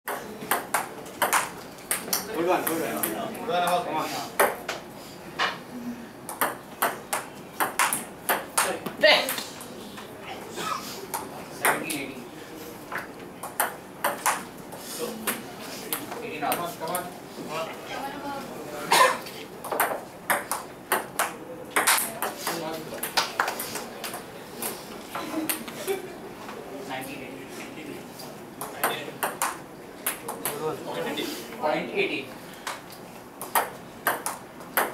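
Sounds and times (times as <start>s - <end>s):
table tennis ball clicking: 6.3s - 8.7s, 28.6s - 30.6s, 33.4s - 34.9s.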